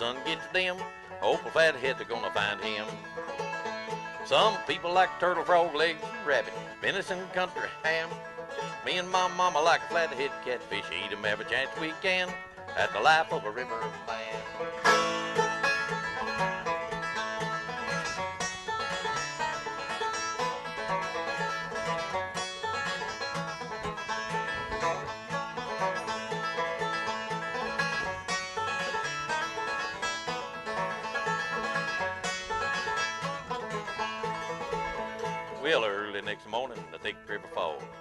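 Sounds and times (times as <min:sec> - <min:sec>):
acoustic guitar: 0:00.0 - 0:38.0
banjo picking fast notes: 0:00.0 - 0:38.0.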